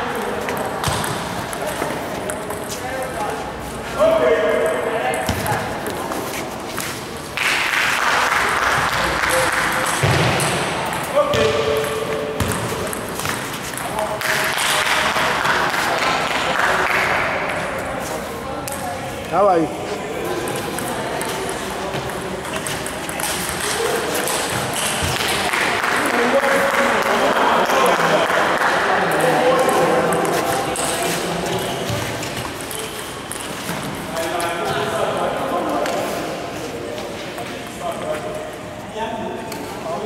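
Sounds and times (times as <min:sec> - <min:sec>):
murmur of voices: 0:00.0 - 0:40.0.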